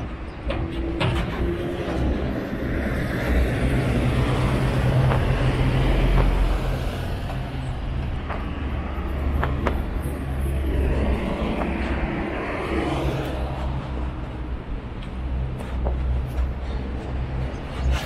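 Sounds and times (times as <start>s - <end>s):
traffic rumbling past: 0.0s - 18.0s.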